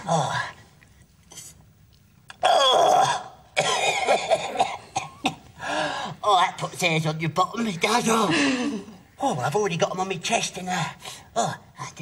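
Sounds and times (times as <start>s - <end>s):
man coughing and gasping: 3.6s - 5.6s.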